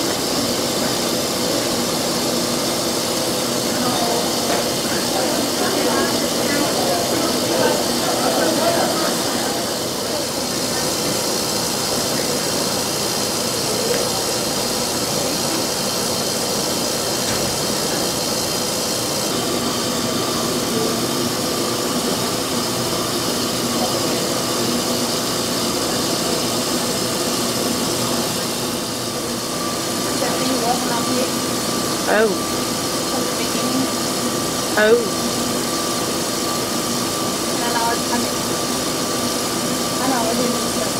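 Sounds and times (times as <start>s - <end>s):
electric mixer running: 0.0s - 40.9s
steady whine: 0.0s - 40.9s.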